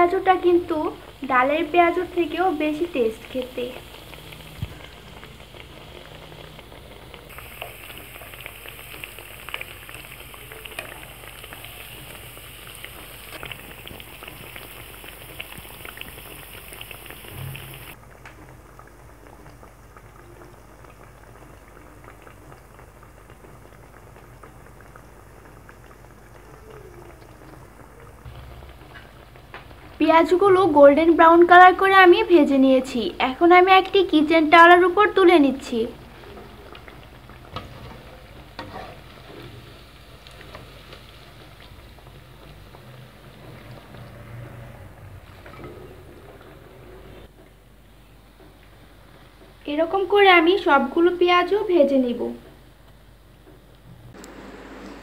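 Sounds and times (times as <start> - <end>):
fritters deep-frying in oil: 0.0 - 54.8.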